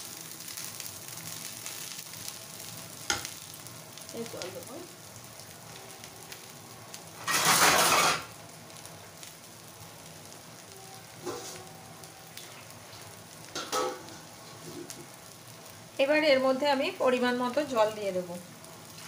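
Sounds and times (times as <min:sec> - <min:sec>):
rice sizzling in oil: 0:00.0 - 0:19.0
metal spatula scraping pan: 0:07.2 - 0:08.3.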